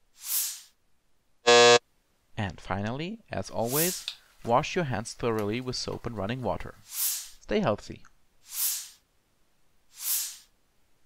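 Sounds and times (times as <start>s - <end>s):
wrong answer buzzer: 1.5s - 1.8s.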